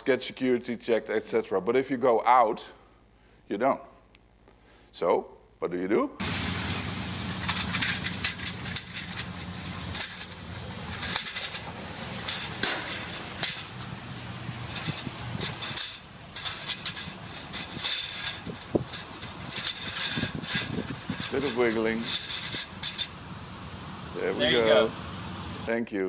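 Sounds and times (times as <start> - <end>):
metal ladder clanking against gate: 7.3 - 23.3.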